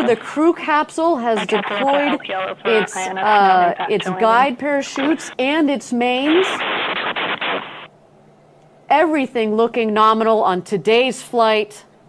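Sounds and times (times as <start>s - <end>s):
faint low hum: 0.0s - 10.2s.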